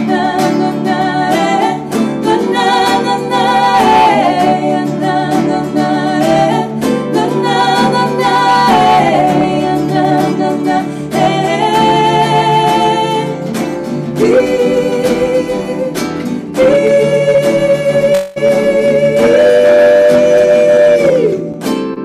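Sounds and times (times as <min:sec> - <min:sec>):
woman singing: 0:00.0 - 0:21.6
acoustic guitar strumming: 0:00.0 - 0:22.0.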